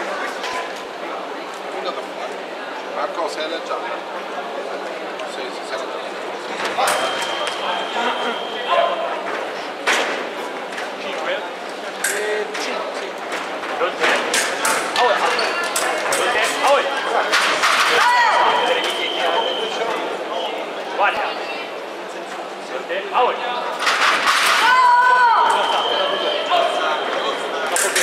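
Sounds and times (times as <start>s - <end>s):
high electronic scoring tone: 6.9s - 9.0s.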